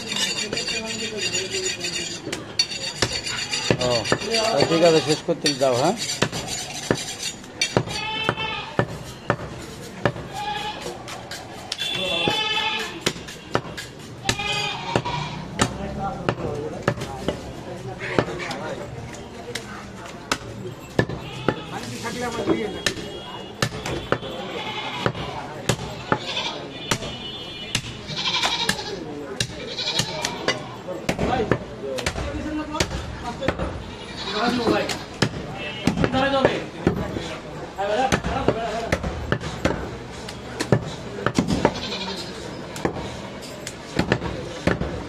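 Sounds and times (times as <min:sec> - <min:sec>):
people talking: 0:00.0 - 0:06.0, 0:09.7 - 0:45.0
cleaver chopping on wooden block: 0:06.0 - 0:10.3
goats bleating: 0:07.9 - 0:08.7, 0:10.3 - 0:10.9, 0:12.2 - 0:13.0, 0:14.2 - 0:15.5, 0:24.5 - 0:25.2, 0:26.2 - 0:26.7, 0:28.1 - 0:29.0, 0:29.6 - 0:30.8, 0:41.7 - 0:42.3.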